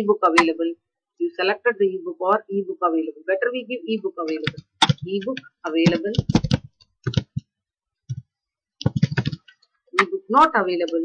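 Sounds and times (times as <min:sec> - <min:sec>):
computer keyboard clicks: 0:04.4 - 0:07.4, 0:08.8 - 0:09.6.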